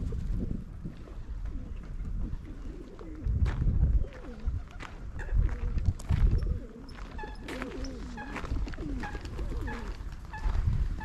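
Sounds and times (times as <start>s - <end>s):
pigeons cooing: 1.2s - 11.0s.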